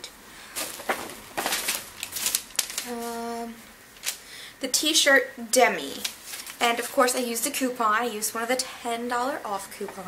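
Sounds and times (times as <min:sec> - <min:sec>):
paper receipt rustling: 0:00.6 - 0:04.2, 0:05.7 - 0:07.4.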